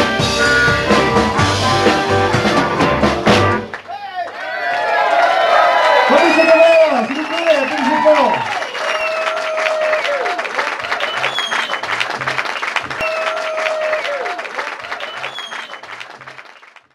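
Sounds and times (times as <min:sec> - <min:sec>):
audience applauding: 0:01.0 - 0:16.9
short whistles: 0:08.6 - 0:09.6, 0:11.0 - 0:11.9, 0:15.0 - 0:15.9.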